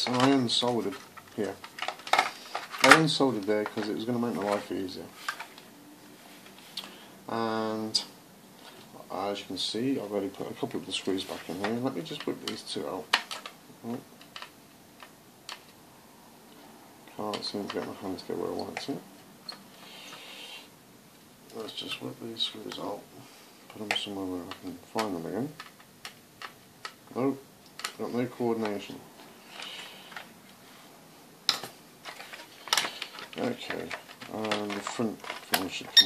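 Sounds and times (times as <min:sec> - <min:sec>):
plastic case handling noises: 0:00.0 - 0:05.7, 0:10.4 - 0:15.8, 0:17.1 - 0:19.6, 0:27.7 - 0:30.6, 0:31.4 - 0:36.0.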